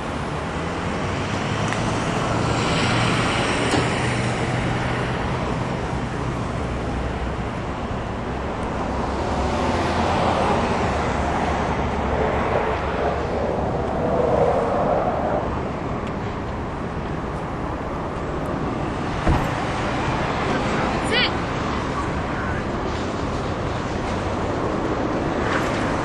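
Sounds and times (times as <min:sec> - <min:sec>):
road traffic: 0:00.0 - 0:26.0
vehicle passing: 0:08.4 - 0:26.0
thump: 0:19.2 - 0:19.6.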